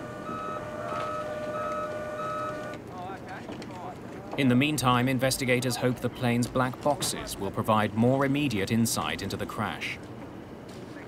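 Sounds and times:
forklift reversing alarm beeping: 0:00.0 - 0:02.8
steady machinery hum: 0:00.0 - 0:11.0.

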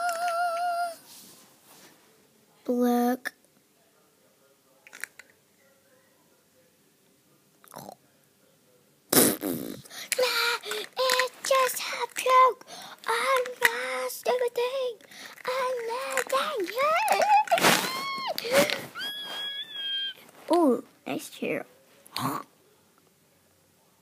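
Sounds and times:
child making vocal noises: 0:00.0 - 0:01.1, 0:09.8 - 0:19.4.

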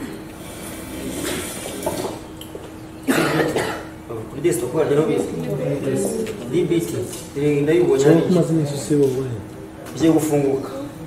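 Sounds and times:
faint steady hum: 0:00.0 - 0:11.0
person coughing: 0:03.1 - 0:04.0.

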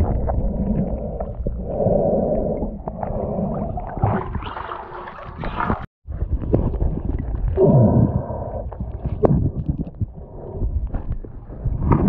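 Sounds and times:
water splashing: 0:00.0 - 0:05.9
muffled underwater wash: 0:00.0 - 0:12.0
clicks underwater: 0:05.3 - 0:12.0.

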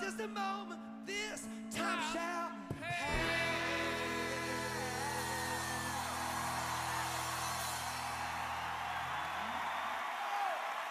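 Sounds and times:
person singing: 0:00.0 - 0:07.0
rock band chord ringing: 0:03.1 - 0:08.9
crowd cheering and applause: 0:03.1 - 0:10.9.

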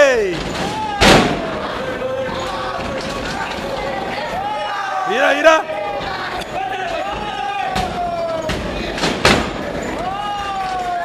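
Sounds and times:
spectators shouting: 0:00.0 - 0:09.0, 0:09.6 - 0:11.0
sharp impacts in wrestling ring: 0:00.3 - 0:04.4, 0:06.0 - 0:11.0.

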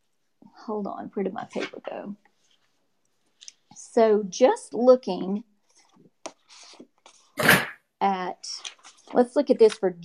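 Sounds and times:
soft rustle: 0:01.5 - 0:03.7.

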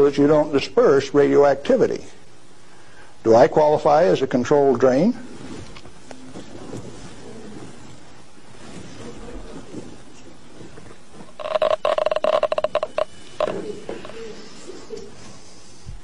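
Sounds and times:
steady electronic tone: 0:11.2 - 0:15.2
radiation counter clicking: 0:11.4 - 0:13.6.

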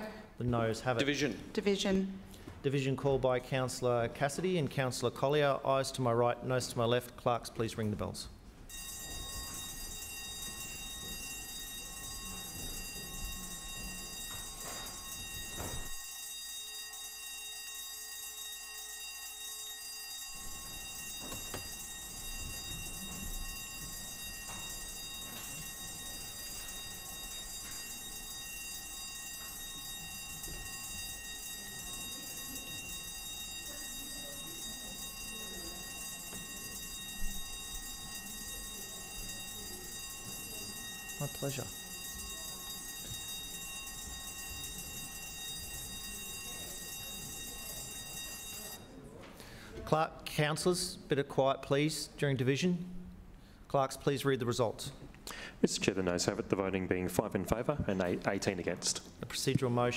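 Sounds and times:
electric bells ringing: 0:08.7 - 0:49.0.

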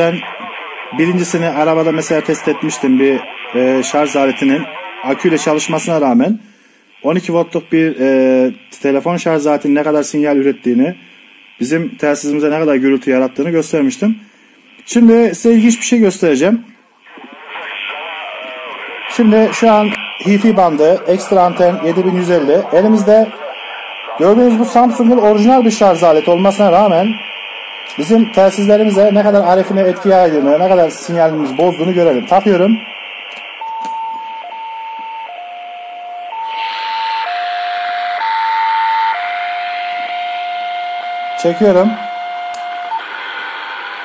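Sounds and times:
faint voices over radio: 0:00.0 - 0:33.7
radio static hiss: 0:00.0 - 0:35.4, 0:36.2 - 0:40.5, 0:41.4 - 0:44.0.

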